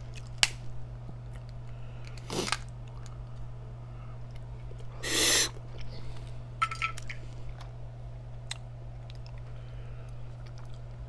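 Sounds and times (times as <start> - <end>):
crackling clicks of eating: 0.0 - 3.5, 4.2 - 6.4, 7.0 - 11.0
steady low hum: 0.0 - 11.0
breathy mouth sound: 4.9 - 5.9.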